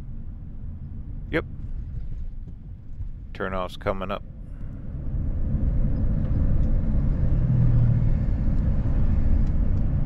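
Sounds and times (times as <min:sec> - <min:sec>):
road and engine rumble in cabin: 0:00.0 - 0:10.0.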